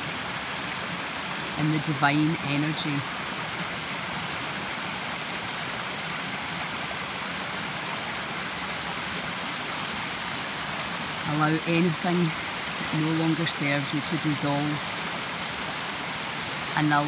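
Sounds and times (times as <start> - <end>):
stream rushing over rocks: 0.0 - 17.0.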